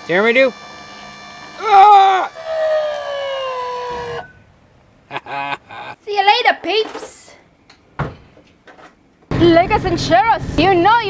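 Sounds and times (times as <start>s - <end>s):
hydraulic pump whining: 0.0s - 4.6s.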